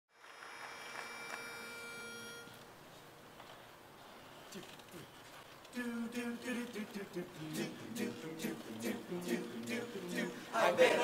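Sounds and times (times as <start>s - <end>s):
chord of held tones: 0.2s - 2.6s.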